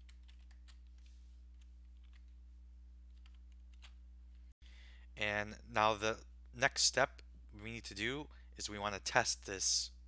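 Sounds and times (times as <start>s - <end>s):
faint keyboard typing: 0.0s - 2.4s, 3.1s - 4.0s
low electrical hum: 0.0s - 10.0s.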